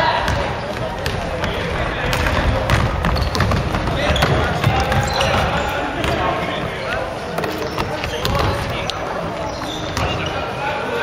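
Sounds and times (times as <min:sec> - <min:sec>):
echoing game noise in hall: 0:00.0 - 0:11.0
sneakers squeaking on court: 0:00.2 - 0:10.6
basketball bouncing on wooden floor: 0:00.3 - 0:06.2, 0:07.7 - 0:08.7.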